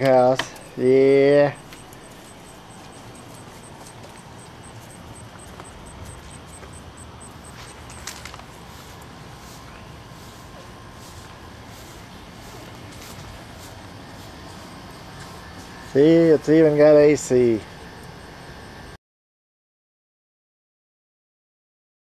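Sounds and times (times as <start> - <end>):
high repeating chirp: 0.7 - 8.0.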